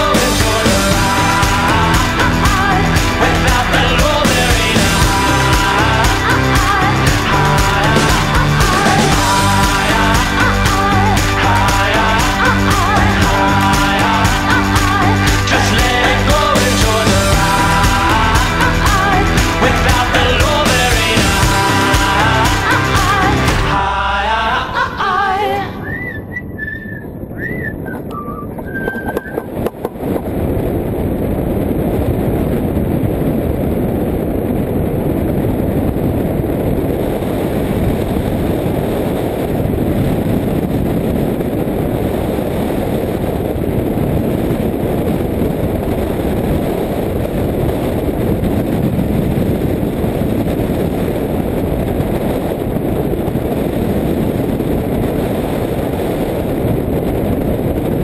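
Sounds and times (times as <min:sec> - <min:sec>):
wind rushing over microphone: 0:00.0 - 0:58.0
high whistle-like tones: 0:25.8 - 0:29.6.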